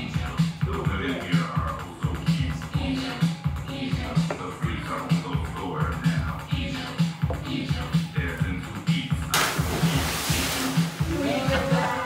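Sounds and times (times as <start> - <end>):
music with steady beat: 0.0 - 12.0
person splashing into pool: 9.3 - 11.8.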